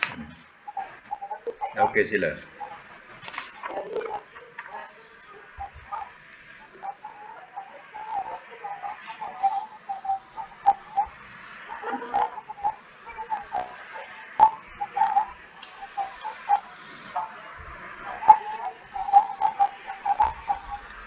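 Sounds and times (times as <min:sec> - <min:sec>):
bird chirping: 0:00.0 - 0:21.0
scattered clicks: 0:00.0 - 0:21.0.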